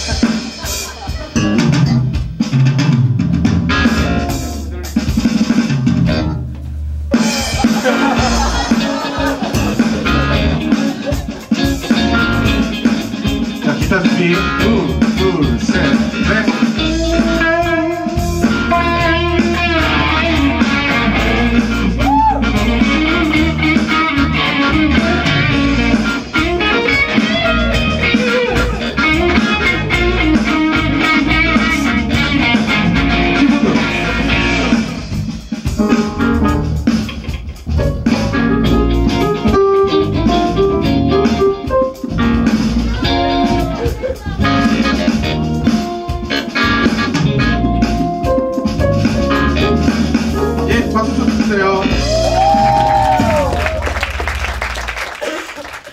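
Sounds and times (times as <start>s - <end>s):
electronic drum kit: 0.0s - 54.9s
bass guitar: 0.0s - 55.9s
electric guitar solo: 10.0s - 35.1s, 37.2s - 50.8s, 51.8s - 54.0s.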